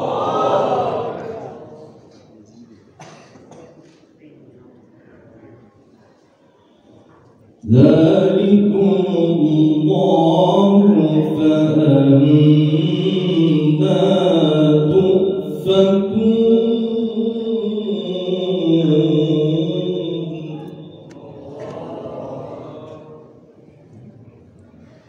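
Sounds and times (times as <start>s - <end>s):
man chanting through loudspeakers: 7.6s - 23.4s.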